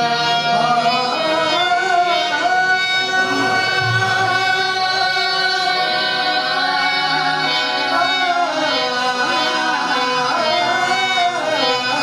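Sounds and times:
harmoniums playing: 0.0 - 12.0
men singing: 0.0 - 12.0.

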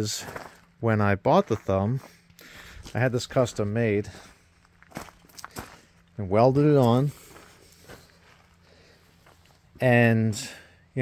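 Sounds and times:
faint footsteps on gravel: 0.0 - 10.7.

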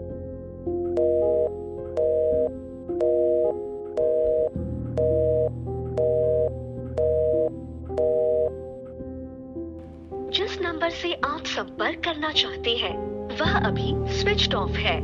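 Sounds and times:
soft background music: 0.0 - 15.0
telephone ringback beeps: 1.0 - 8.6.

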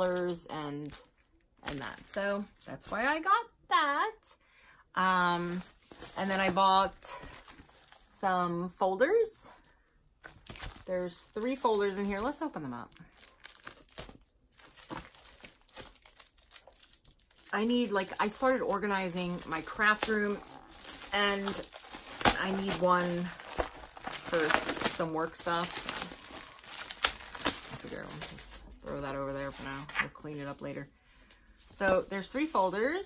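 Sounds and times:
speech: 0.0 - 1.0, 1.6 - 4.4, 5.0 - 7.2, 8.2 - 9.6, 10.9 - 12.9, 17.5 - 20.4, 21.1 - 21.7, 22.3 - 23.4, 27.7 - 30.9, 31.8 - 33.0
paper and plastic rustling: 5.1 - 8.1, 10.2 - 30.8
packaging crinkling and tearing: 5.4 - 8.1, 10.2 - 28.7.

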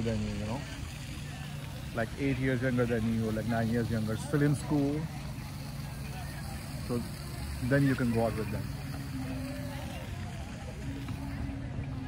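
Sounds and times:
faint voices: 0.0 - 12.0
low outdoor rumble: 0.0 - 12.0.

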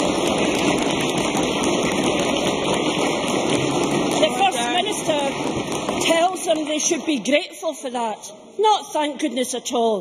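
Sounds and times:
crowd applauding: 0.0 - 6.9.

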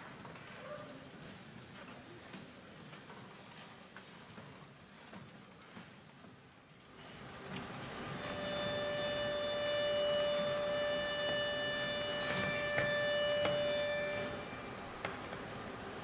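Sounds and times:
pitch pipe note: 8.2 - 14.7.

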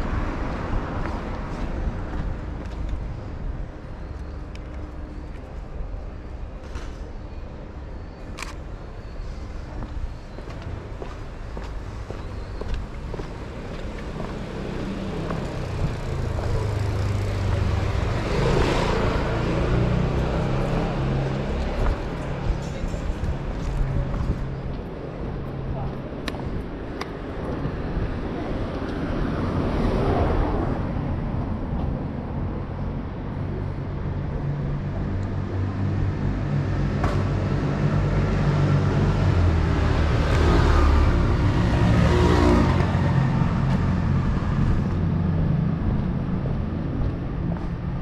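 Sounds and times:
vehicles passing: 0.0 - 48.0.

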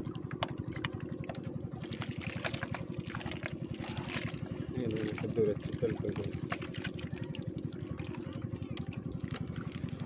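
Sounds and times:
wet mud squelching: 0.4 - 8.0.

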